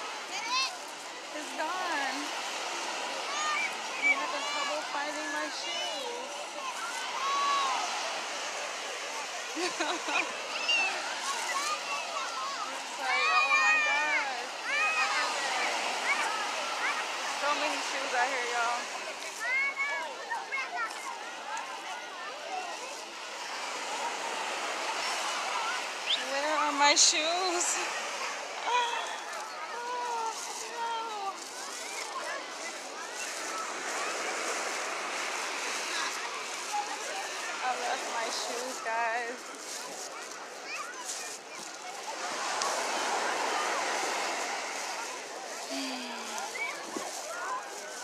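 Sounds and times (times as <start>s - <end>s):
crowd voices: 0.0s - 48.0s
surf and wind hiss: 0.0s - 48.0s
steady rushing noise: 22.5s - 48.0s
snatches of voices: 27.7s - 48.0s.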